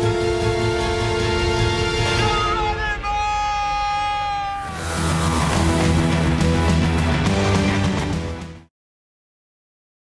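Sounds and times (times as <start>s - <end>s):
theme music: 0.0s - 8.7s
man screaming: 2.1s - 5.7s.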